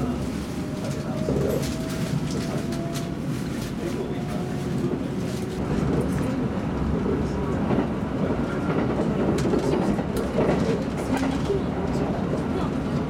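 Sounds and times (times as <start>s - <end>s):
train wheels rumbling on rail: 0.0s - 13.0s.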